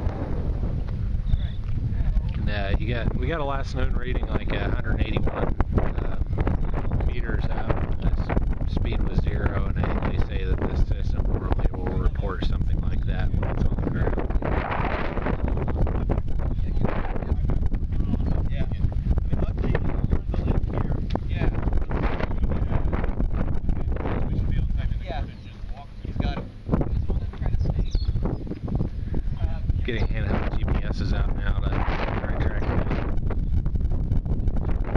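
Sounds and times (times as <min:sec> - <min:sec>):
wind buffeting microphone: 0:00.0 - 0:34.9
people talking in background: 0:01.2 - 0:04.2.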